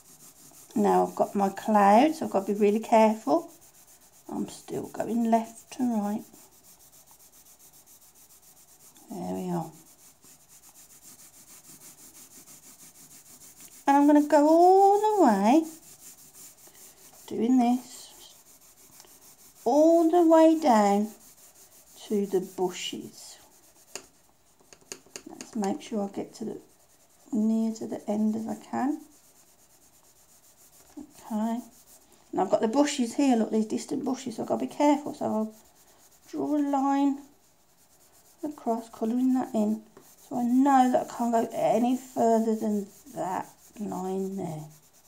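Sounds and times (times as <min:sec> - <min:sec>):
pencil scratching on paper: 0:00.0 - 0:45.0.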